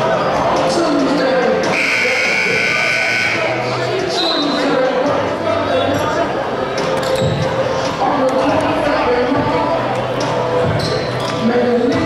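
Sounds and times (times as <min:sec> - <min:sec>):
chatter in echoing gym: 0:00.0 - 0:12.0
scoreboard horn: 0:01.7 - 0:03.6.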